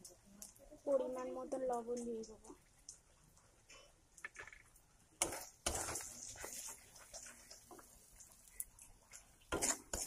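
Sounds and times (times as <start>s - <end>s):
metal spatula scraping a pan: 5.2s - 8.0s, 9.1s - 10.0s.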